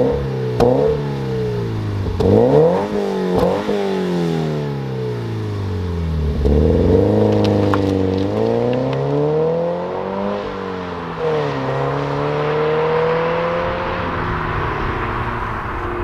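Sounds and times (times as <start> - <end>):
car engine accelerating: 0.0 - 16.0.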